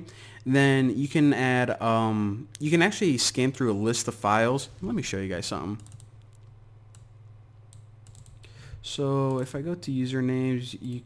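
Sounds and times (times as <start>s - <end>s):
faint low hum: 0.0s - 11.0s
computer mouse clicks: 5.8s - 7.1s, 7.7s - 8.5s.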